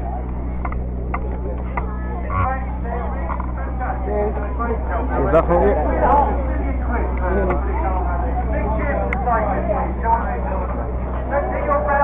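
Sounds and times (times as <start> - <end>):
crowd chatter: 0.0 - 12.0
steady low rumble: 0.0 - 12.0.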